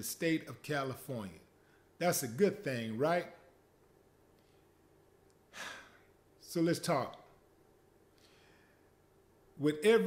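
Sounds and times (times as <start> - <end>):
man sighing: 5.5 - 6.1.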